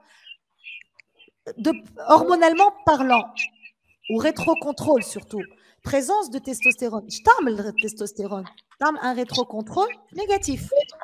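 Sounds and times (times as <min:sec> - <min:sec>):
person talking: 0:01.5 - 0:03.4, 0:04.1 - 0:11.0.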